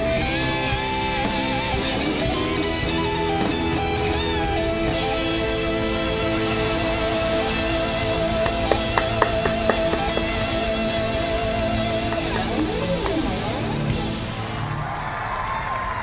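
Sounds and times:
electric guitar long note: 3.8s - 14.8s
drum and cymbal hits: 8.4s - 11.2s
crowd applause: 8.4s - 16.0s.

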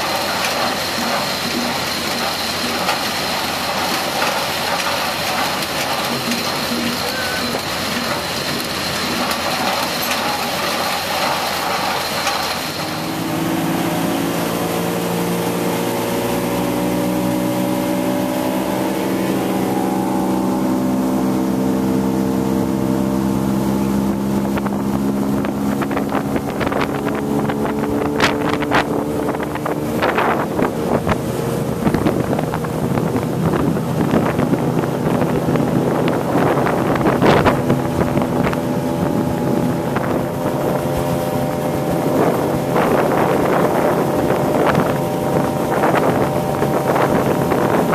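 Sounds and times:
machinery running: 0.0s - 47.9s
outboard motor running: 0.0s - 47.9s
wind buffeting microphone: 0.0s - 47.9s.

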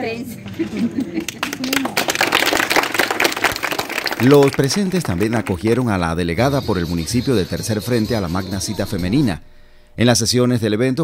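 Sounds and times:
people clapping: 0.5s - 7.0s.

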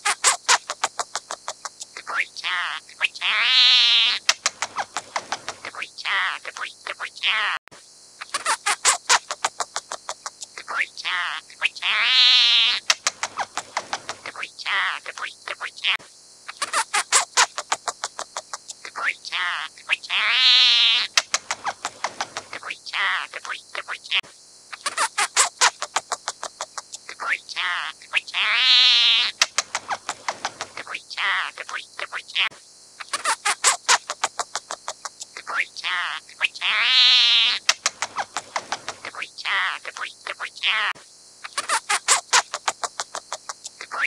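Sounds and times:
small bird singing rapid notes: 0.0s - 7.6s, 8.2s - 44.0s
bird quick short clicks: 4.2s - 5.7s, 12.8s - 14.4s, 29.4s - 30.8s, 37.6s - 39.1s.

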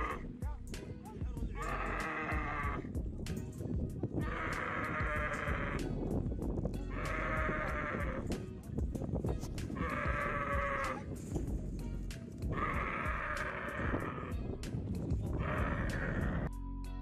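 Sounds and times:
camel bawling: 0.0s - 0.4s, 1.5s - 3.0s, 4.2s - 6.1s, 6.7s - 8.5s, 9.5s - 16.5s.

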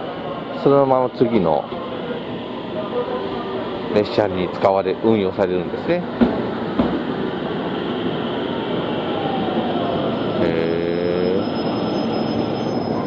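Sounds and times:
electric train rumbling past: 0.0s - 13.0s
train motor whine: 0.0s - 13.0s
short pitched tone: 9.8s - 13.0s.

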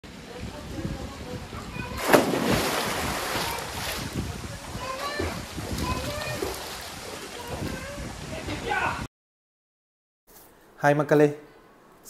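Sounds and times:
water sloshing: 1.9s - 8.6s
diving splash: 2.0s - 4.2s.

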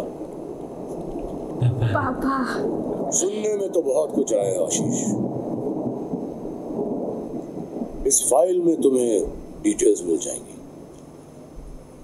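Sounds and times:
low thunder-like rumble: 0.0s - 10.9s.

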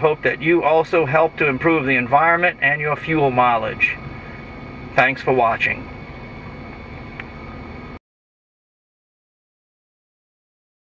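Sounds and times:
truck engine idling: 0.0s - 8.0s.

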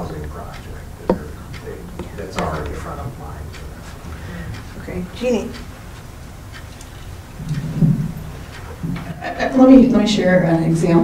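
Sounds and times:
microphone handling thuds: 1.0s - 2.8s, 7.4s - 9.2s.

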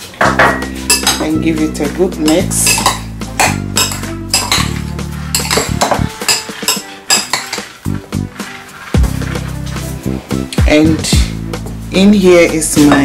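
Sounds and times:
background music: 0.0s - 13.0s
spoon scraping ceramic bowl: 2.2s - 8.7s.

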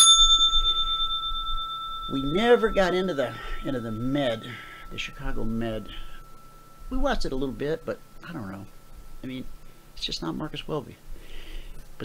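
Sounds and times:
bell ringing: 0.0s - 9.4s.

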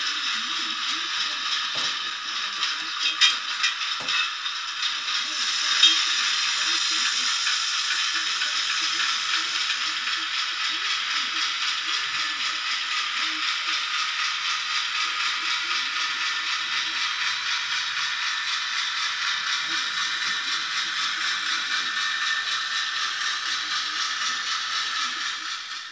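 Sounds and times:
diesel locomotive running: 0.0s - 25.9s.

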